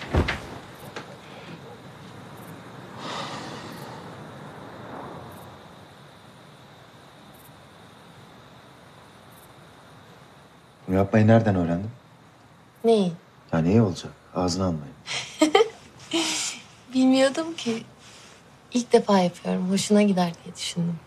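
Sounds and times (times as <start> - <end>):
window opening clunk: 0.0 - 1.1
distant traffic: 0.0 - 21.0.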